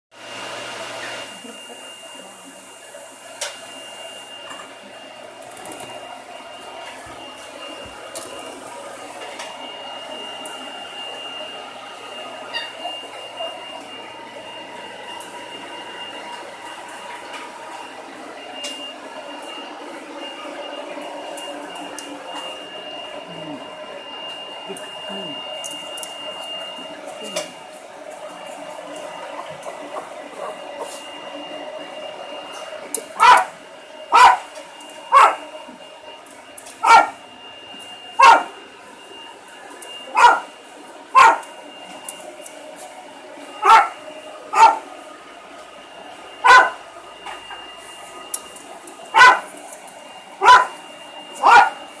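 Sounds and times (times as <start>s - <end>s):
thin high whine: 1.2s - 52.0s
dog barking: 33.2s - 33.5s, 34.1s - 34.5s, 35.1s - 35.4s, 36.8s - 37.2s, 38.2s - 38.6s, 40.1s - 40.5s, 41.1s - 41.5s, 43.6s - 44.9s, 46.4s - 46.8s, 49.1s - 49.5s, 50.4s - 50.8s, 51.4s - 51.9s.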